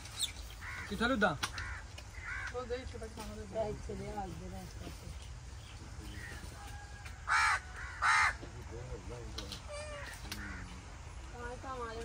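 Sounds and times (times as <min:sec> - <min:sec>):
bird cawing harshly: 0:00.6 - 0:02.6, 0:07.3 - 0:08.4.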